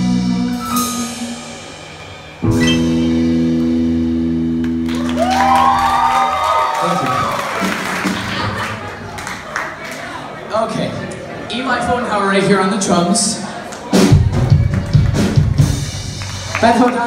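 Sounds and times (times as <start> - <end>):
live rock band playing: 0.0 - 8.7, 13.7 - 17.0
audience applause: 4.6 - 10.4, 13.6 - 17.0
audience whooping: 4.8 - 10.2.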